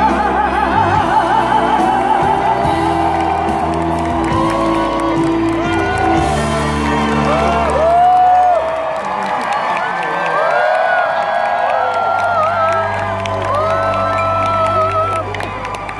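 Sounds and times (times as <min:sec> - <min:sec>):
live band music over loudspeakers: 0:00.0 - 0:09.6
crowd cheering and whooping: 0:00.0 - 0:15.9.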